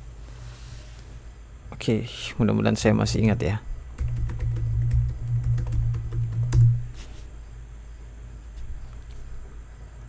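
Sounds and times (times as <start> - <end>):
low steady hum: 0.0 - 10.0
keyboard typing clicks: 4.0 - 6.8.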